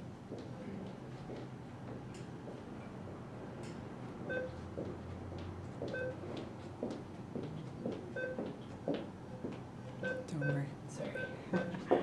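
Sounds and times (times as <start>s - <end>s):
room hum: 0.0s - 12.0s
keypad two-tone beeps: 10.0s - 10.6s.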